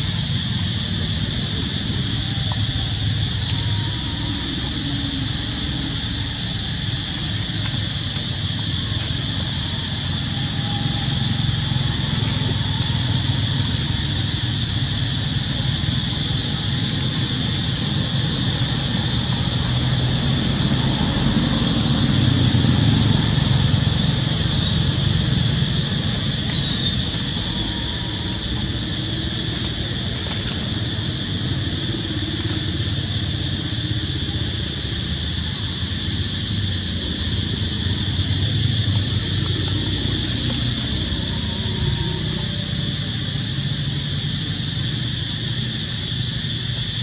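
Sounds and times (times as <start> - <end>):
constant high-pitched drone: 0.0 - 47.0.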